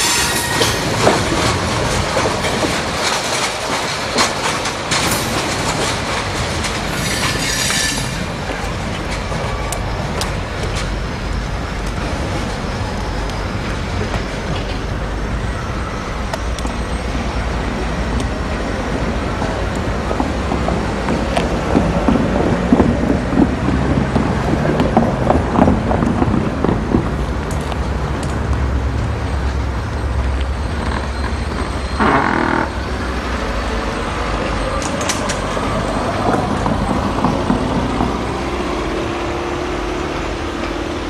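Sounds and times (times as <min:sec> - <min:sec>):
freight train rumbling: 0:00.0 - 0:41.0
train horn toot: 0:32.0 - 0:33.0.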